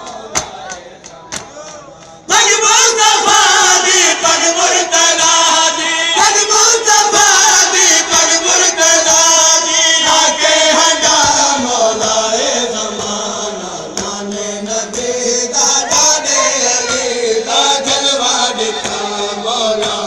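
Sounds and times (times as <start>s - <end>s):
voices chanting a lament: 0.0s - 20.0s.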